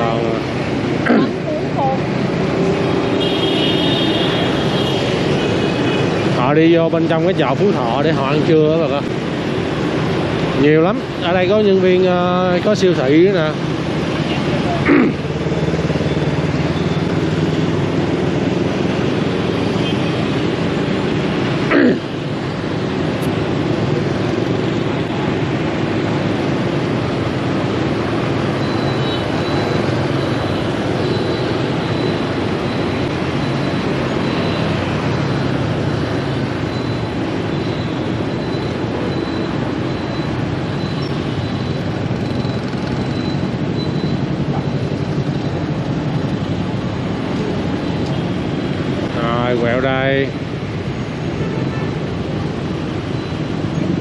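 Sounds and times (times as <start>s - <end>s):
motorbike engine hum: 0.0s - 54.0s
road noise: 0.0s - 54.0s
surrounding motorbike traffic: 0.0s - 54.0s.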